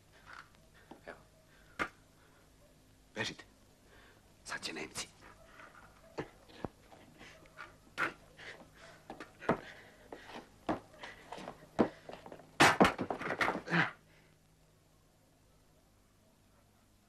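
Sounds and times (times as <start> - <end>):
knocks and scuffs on cobblestones: 8.0 - 13.7.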